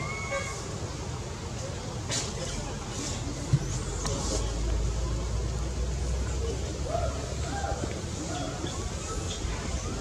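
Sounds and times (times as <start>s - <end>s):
road vehicle rumble: 0.0s - 10.0s.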